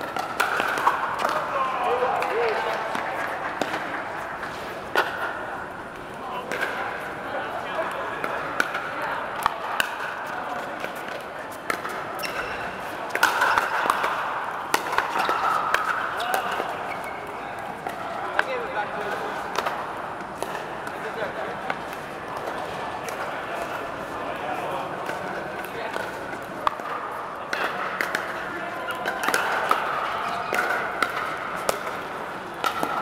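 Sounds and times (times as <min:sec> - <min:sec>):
paddles hitting plastic ball: 0:00.0 - 0:05.3, 0:13.1 - 0:16.7, 0:25.0 - 0:33.0
chatter of players: 0:00.0 - 0:33.0.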